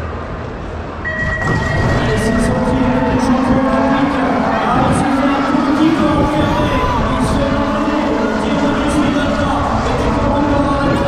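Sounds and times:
crowd noise: 0.0 - 11.0
high electronic tone: 1.0 - 4.0.

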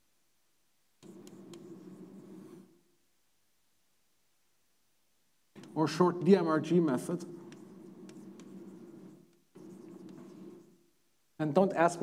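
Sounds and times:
chalk tapping on blackboard: 1.0 - 2.6, 7.1 - 10.8
chalk scratching on blackboard: 1.0 - 2.7, 5.6 - 10.8.

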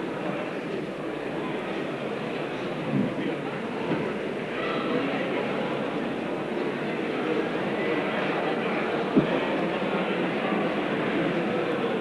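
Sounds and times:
concert hall crowd hubbub: 0.0 - 12.0.

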